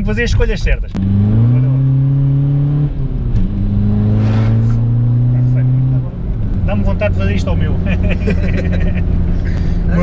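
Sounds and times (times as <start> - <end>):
diesel engine accelerating: 1.0 - 10.0.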